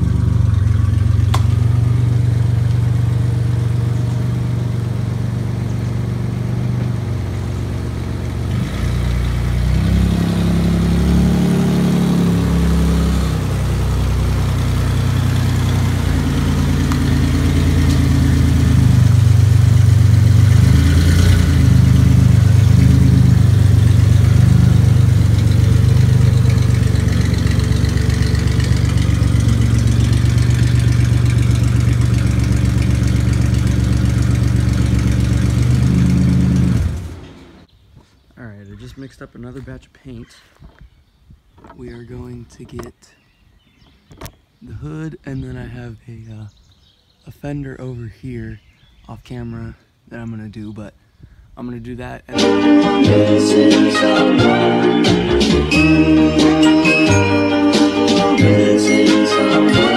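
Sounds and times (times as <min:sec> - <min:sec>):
car engine at low speed: 0:00.0 - 0:40.2.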